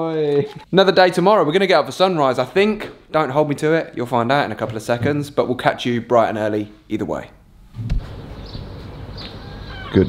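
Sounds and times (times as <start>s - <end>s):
bird calls: 8.1s - 10.0s.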